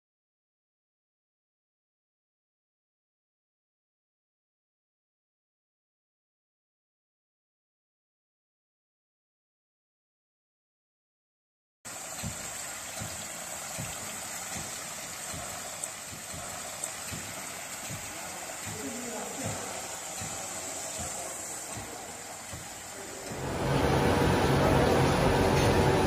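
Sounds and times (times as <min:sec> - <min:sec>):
water splashing into a trough: 0:11.9 - 0:23.8
machine hum: 0:11.9 - 0:26.0
pump thuds: 0:11.9 - 0:26.0.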